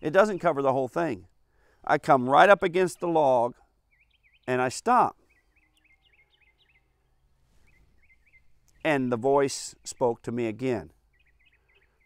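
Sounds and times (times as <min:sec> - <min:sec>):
songbird chirping: 0:00.0 - 0:12.0.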